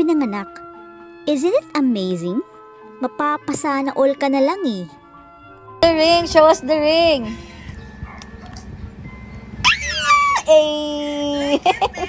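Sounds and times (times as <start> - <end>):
woman's excited squeal: 9.6 - 11.6.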